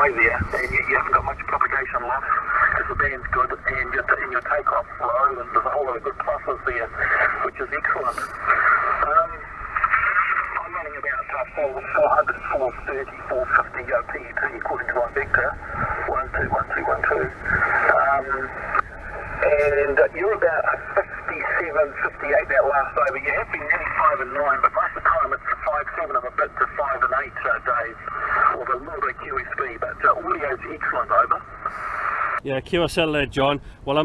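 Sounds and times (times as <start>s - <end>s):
tinny radio voice talking: 0.0s - 31.5s
radio background hiss: 0.0s - 34.0s.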